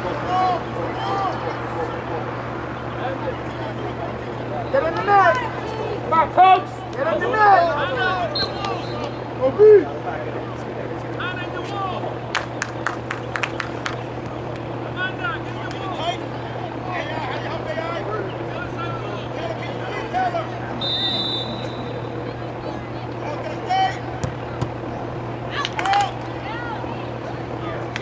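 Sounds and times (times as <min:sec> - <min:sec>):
spectators talking and calling out: 0:00.0 - 0:28.0
steady low hum: 0:00.0 - 0:28.0
short high whistle: 0:20.8 - 0:22.0.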